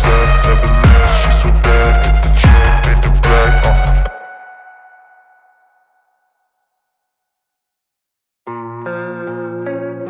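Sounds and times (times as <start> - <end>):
background music: 0.0 - 5.9.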